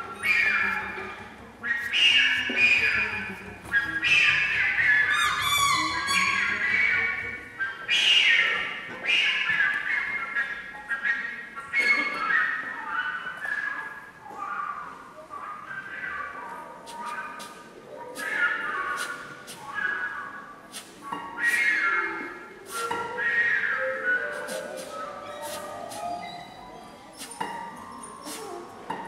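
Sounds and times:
strings harp and piano improvising: 22.9s - 28.9s.

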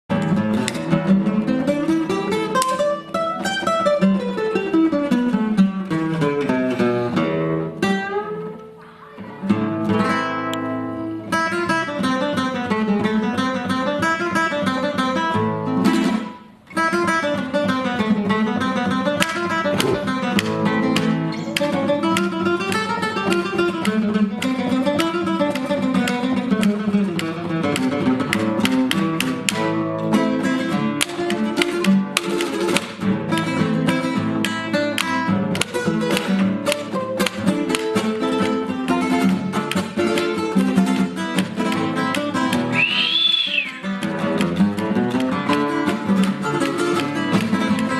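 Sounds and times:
fingerstyle acoustic guitar: 0.1s - 47.9s.

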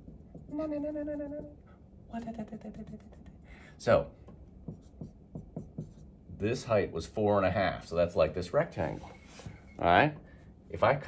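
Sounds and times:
marker writing on whiteboard: 0.0s - 0.6s, 2.6s - 3.4s, 4.1s - 6.6s.

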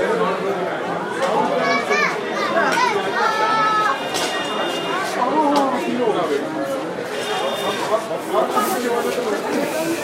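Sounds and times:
people talking at once: 0.0s - 10.0s.

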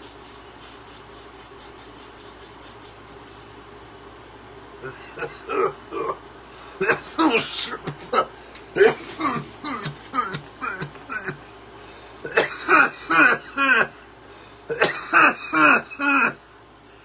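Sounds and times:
man coughing: 4.8s - 6.2s, 6.8s - 11.5s, 12.2s - 14.1s, 14.7s - 16.4s.

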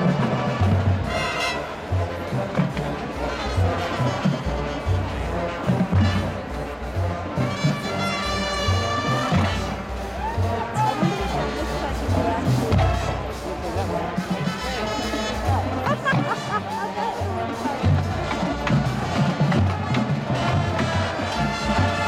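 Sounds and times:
marching band brass: 0.0s - 22.0s
bass drum beat: 9.3s - 22.0s.

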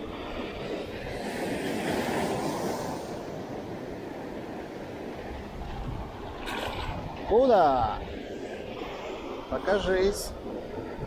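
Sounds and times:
small waves washing up sand: 0.0s - 11.0s
wind on microphone: 0.0s - 11.0s.

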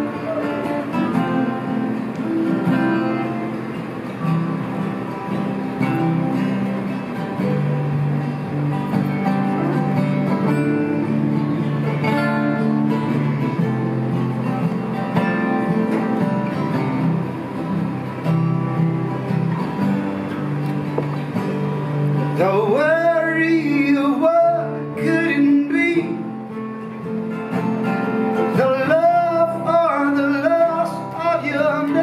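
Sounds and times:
mandolin: 0.0s - 22.6s
acoustic guitars strumming: 0.0s - 32.0s.

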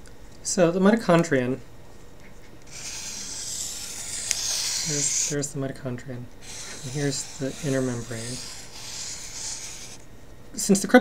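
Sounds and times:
marker pen rubbing on paper: 2.7s - 5.4s, 6.4s - 10.0s.

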